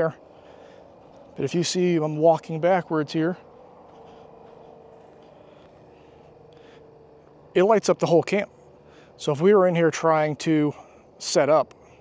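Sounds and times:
faint steady hum: 0.0s - 12.0s
soft scuffs: 0.3s - 1.5s, 3.4s - 7.4s.

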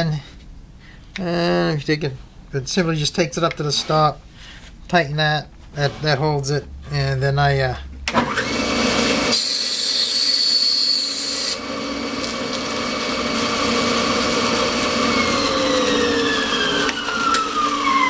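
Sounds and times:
bandsaw motor hum: 8.0s - 18.0s
saw blade cutting shell: 9.3s - 12.6s.

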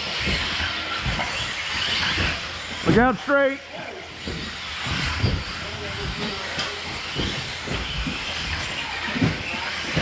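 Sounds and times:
rc cars motors hissing: 0.0s - 10.0s.

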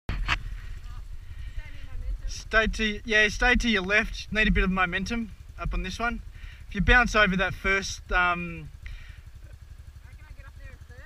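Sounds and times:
dirt bike engine idling: 0.1s - 11.0s.

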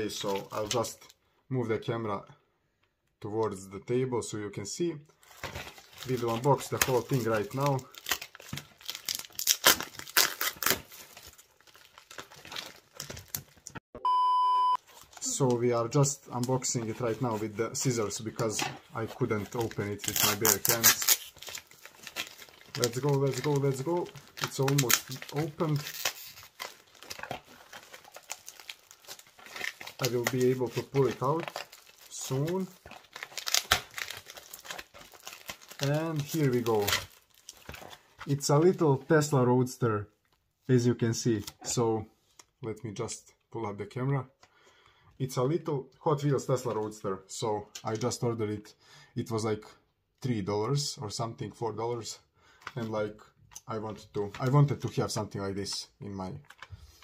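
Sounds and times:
plastic mailer crinkling: 5.2s - 13.8s, 14.8s - 38.8s
person speaking: 6.0s - 8.0s, 15.1s - 26.3s, 29.8s - 32.9s, 35.6s - 37.1s, 38.2s - 40.1s, 50.2s - 56.5s.

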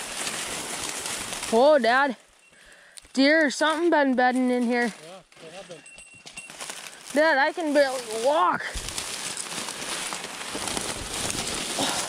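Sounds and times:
footsteps crunching through dry stalks: 0.0s - 12.0s.

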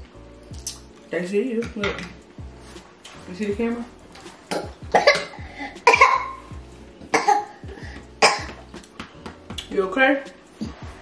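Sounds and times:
child coughing: 4.5s - 6.5s, 7.1s - 8.6s.

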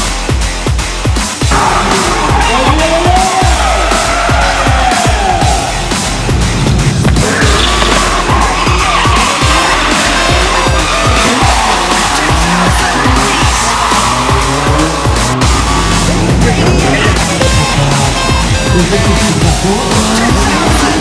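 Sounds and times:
car engines revving: 0.0s - 21.0s
music with steady beat: 0.0s - 21.0s
tyres squealing: 7.2s - 21.0s.

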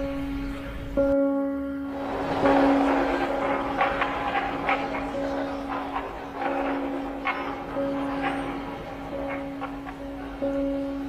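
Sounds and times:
low drone tone: 0.0s - 11.0s.

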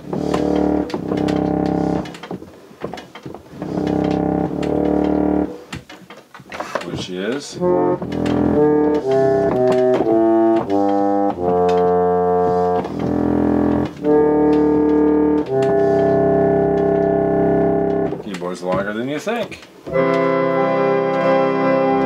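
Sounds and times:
reed organ playing chords: 0.0s - 2.4s, 3.5s - 5.7s, 7.6s - 18.3s, 19.9s - 22.0s.

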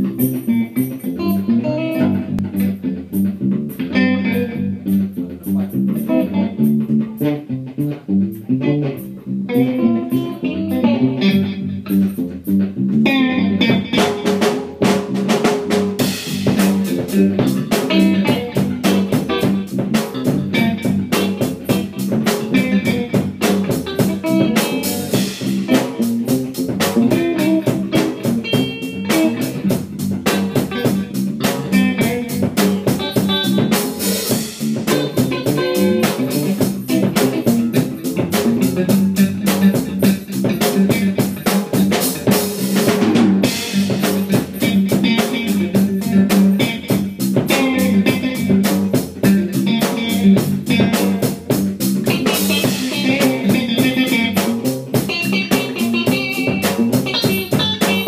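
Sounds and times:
bass: 0.0s - 58.0s
drum kit: 0.0s - 58.0s
electric guitar improvising: 0.0s - 58.0s.

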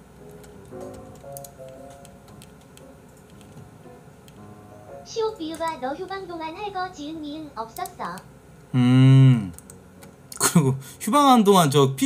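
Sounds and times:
soft background music: 0.0s - 12.0s
faint ticking clicks: 5.4s - 6.2s, 7.7s - 8.3s.

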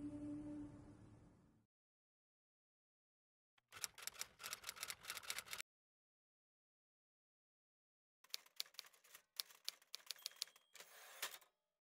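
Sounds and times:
typewriter keys striking: 8.3s - 10.6s.

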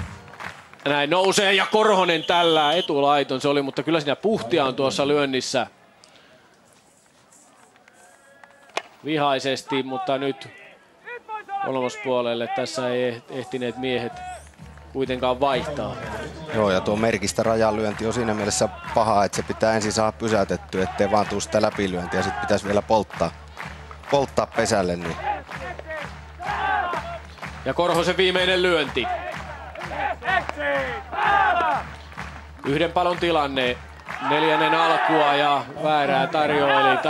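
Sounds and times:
faint stadium background: 0.0s - 37.0s
spectator crowd noise: 0.0s - 37.0s
commentator speaking: 0.9s - 5.6s, 15.0s - 23.3s, 24.0s - 26.1s, 27.6s - 31.1s, 32.6s - 37.0s
people shouting from stands: 13.6s - 14.5s, 17.9s - 20.0s, 20.6s - 22.8s, 25.0s - 27.3s, 28.0s - 31.9s, 34.1s - 37.0s.

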